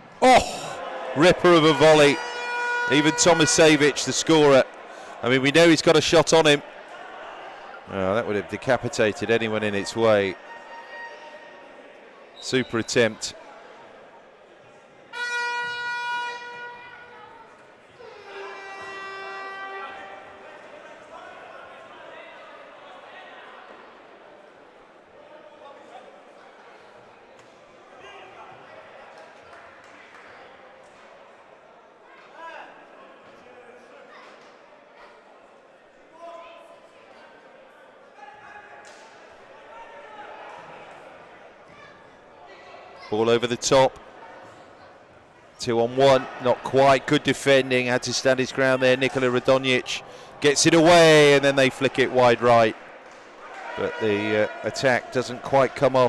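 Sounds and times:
echoing hall noise: 0.0s - 24.4s
horn blast: 1.2s - 4.0s, 15.1s - 17.0s, 18.0s - 20.3s.

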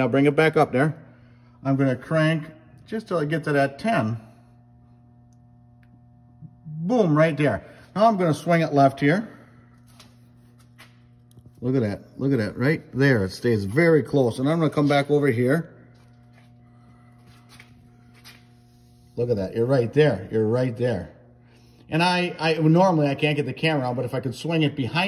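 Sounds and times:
low electrical hum: 0.0s - 25.0s.

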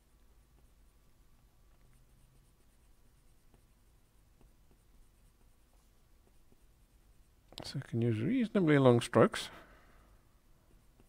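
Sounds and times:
pencil scratching on paper: 1.7s - 7.5s, 10.6s - 11.0s.

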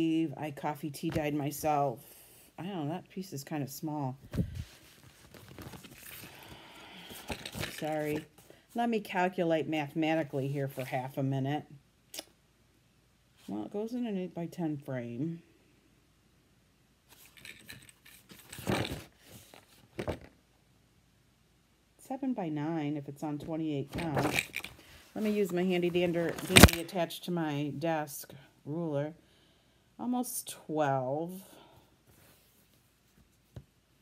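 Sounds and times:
paper and cloth rustling: 4.2s - 8.4s, 23.9s - 27.0s.

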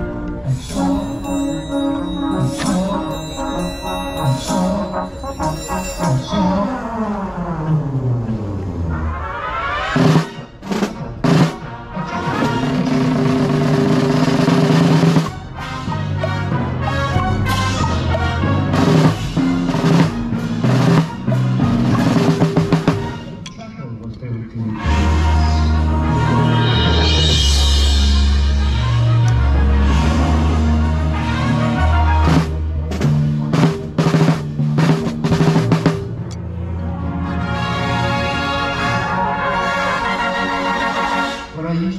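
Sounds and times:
brass and percussion ensemble: 0.0s - 7.5s, 8.2s - 23.6s, 24.6s - 41.9s
snare drum strokes and rolls: 9.8s - 23.4s, 30.2s - 36.2s
loud ensemble hits: 24.9s - 31.1s.

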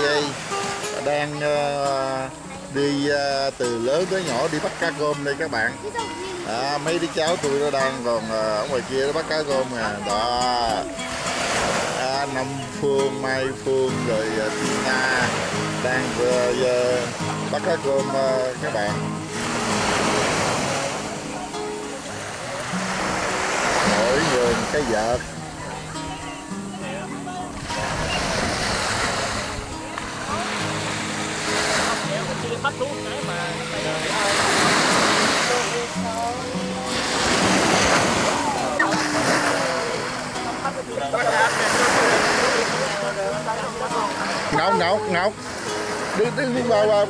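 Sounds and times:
people calling to each other: 0.0s - 47.0s
sea surf rushing: 0.0s - 47.0s
seawater splashing around waders: 0.0s - 47.0s.

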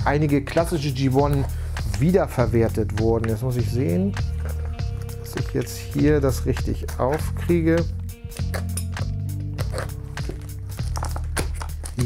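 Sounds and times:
background music with low notes: 0.0s - 12.0s.

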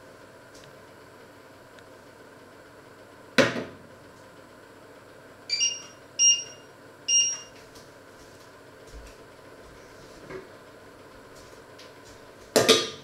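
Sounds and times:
short electronic beeps: 5.5s - 7.5s.

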